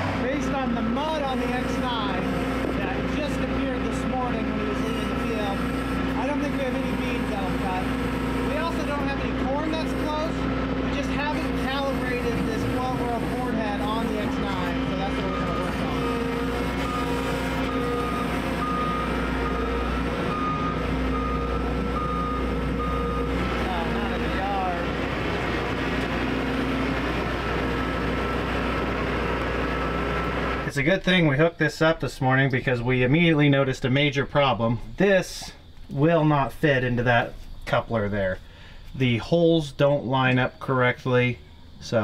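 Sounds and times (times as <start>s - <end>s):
diesel engine idling: 0.0s - 30.8s
backup alarm beeping: 0.3s - 25.0s.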